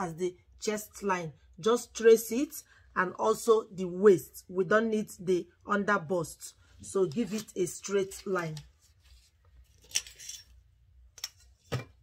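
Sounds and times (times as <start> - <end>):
paper rustling: 7.0 - 9.9.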